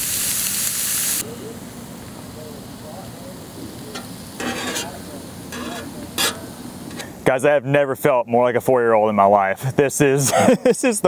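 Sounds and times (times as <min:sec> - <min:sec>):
fish sizzling in oil: 0:00.0 - 0:07.2
scraping on steel griddle: 0:03.9 - 0:07.2.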